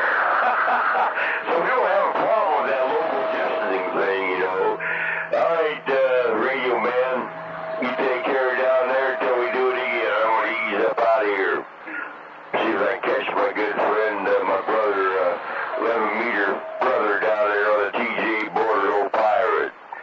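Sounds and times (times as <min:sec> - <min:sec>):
garbled radio voices: 0:00.0 - 0:20.0
steady whistling tone: 0:01.4 - 0:10.8, 0:14.5 - 0:17.9.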